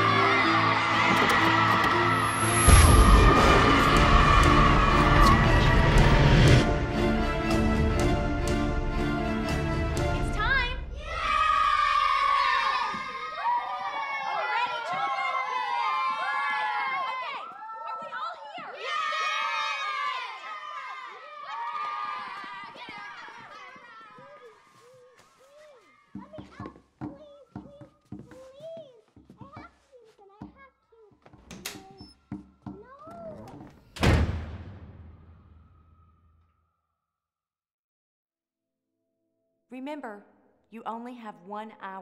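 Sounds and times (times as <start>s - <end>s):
children shouting and cheering: 0.0s - 6.4s, 10.4s - 30.7s
loud sudden noise: 2.3s - 6.7s.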